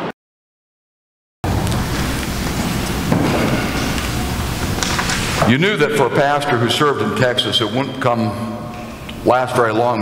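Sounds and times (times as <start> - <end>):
even hiss with low rumble: 1.5 - 10.0.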